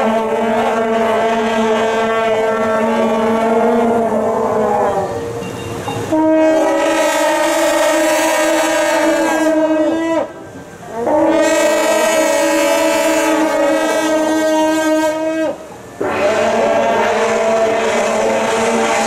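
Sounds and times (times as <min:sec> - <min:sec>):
long-held horn chords: 0:00.0 - 0:19.0.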